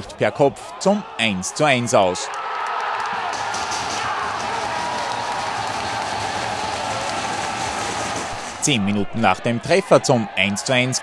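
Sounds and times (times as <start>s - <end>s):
crowd shouting: 0.0s - 11.0s
stadium crowd cheering: 0.0s - 11.0s.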